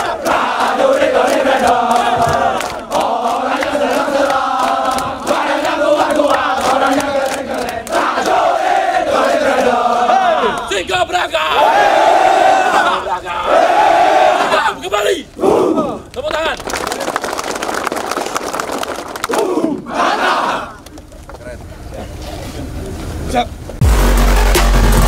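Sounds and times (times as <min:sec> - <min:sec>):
soldiers chanting in unison: 0:00.0 - 0:16.0, 0:19.3 - 0:20.8
crowd shouting: 0:00.0 - 0:16.1, 0:19.3 - 0:20.8.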